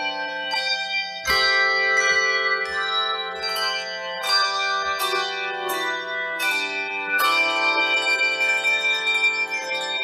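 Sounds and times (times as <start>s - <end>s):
handbell choir playing: 0.0s - 10.0s.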